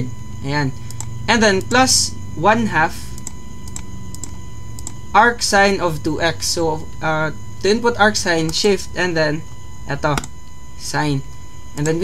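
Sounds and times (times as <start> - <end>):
steady electrical hum: 0.0 - 12.0
computer mouse clicks: 0.9 - 1.7, 3.2 - 5.0.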